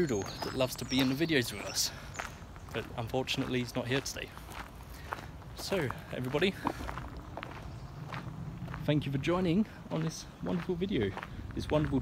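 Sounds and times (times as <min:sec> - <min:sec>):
footsteps on sandy path: 0:00.0 - 0:12.0.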